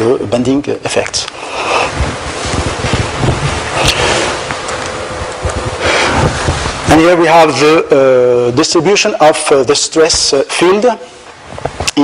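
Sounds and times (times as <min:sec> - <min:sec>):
wind rumbling on microphone: 0:01.4 - 0:07.4, 0:11.4 - 0:12.0.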